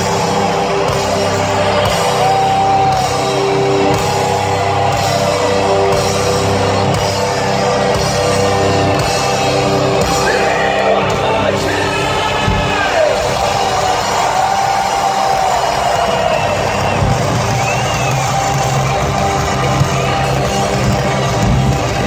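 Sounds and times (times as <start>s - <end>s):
crowd cheering and whooping: 0.0s - 22.0s
live industrial metal band: 0.0s - 22.0s.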